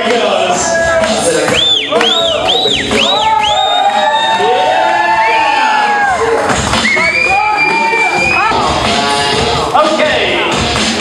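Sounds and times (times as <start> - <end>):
loud music: 0.0 - 11.0
crowd cheering and whooping: 0.5 - 9.4.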